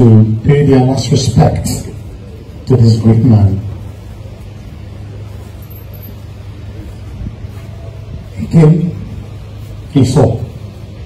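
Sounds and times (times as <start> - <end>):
outdoor background noise: 0.0 - 11.0
steady low hum: 0.0 - 11.0.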